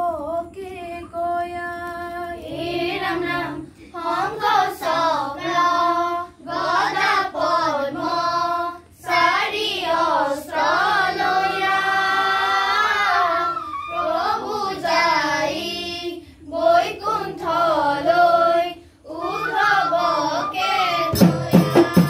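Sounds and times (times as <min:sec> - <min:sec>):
children singing devotional chant: 0:00.0 - 0:22.0.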